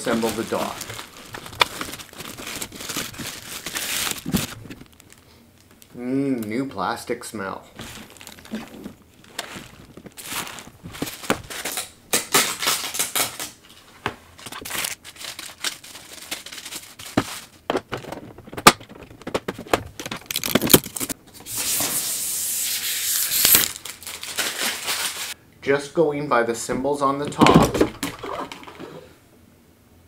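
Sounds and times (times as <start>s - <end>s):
plastic bag crinkling and rustling: 0.0s - 6.0s, 7.7s - 21.2s, 23.2s - 25.4s.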